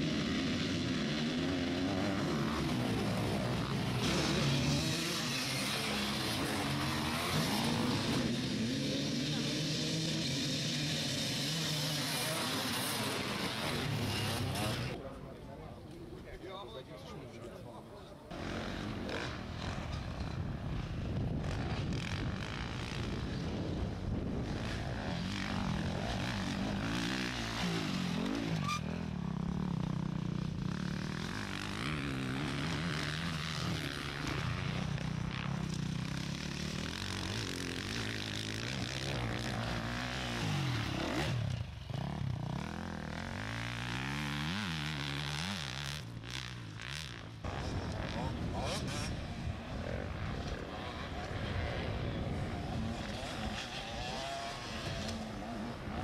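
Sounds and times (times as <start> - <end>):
motorcycle engines revving: 0.0 - 56.0.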